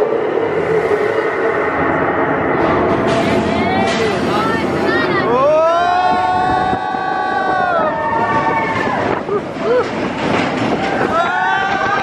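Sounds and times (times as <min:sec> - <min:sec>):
roller coaster wheels clattering: 0:00.0 - 0:12.0.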